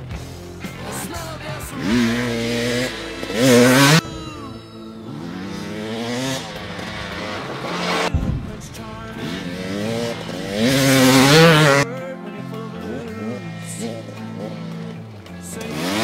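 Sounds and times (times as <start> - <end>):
dirt bike engine revving: 0.0 - 16.0
rock music: 0.0 - 16.0.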